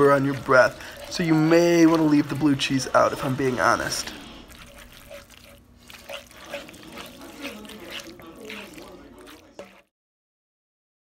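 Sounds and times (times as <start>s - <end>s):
wooden spoon stirring pasta: 0.0s - 9.9s.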